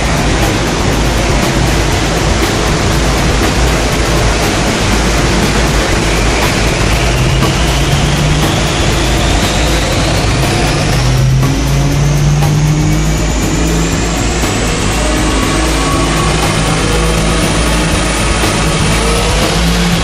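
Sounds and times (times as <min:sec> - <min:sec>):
car engine running under load: 0:00.0 - 0:20.0
rising dyno whine: 0:00.0 - 0:20.0.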